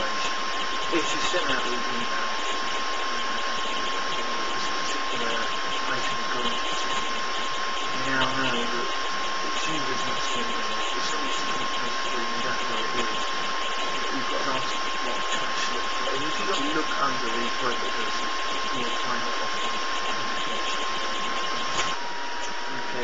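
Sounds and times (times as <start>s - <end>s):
faint murmur: 0.0s - 23.0s
steady hiss: 0.0s - 23.0s
thin high whine: 0.0s - 23.0s.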